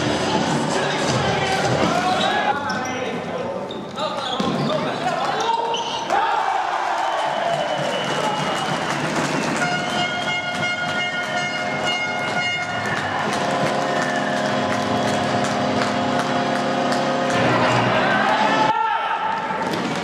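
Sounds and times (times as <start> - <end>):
horn blasts: 9.4 - 18.7.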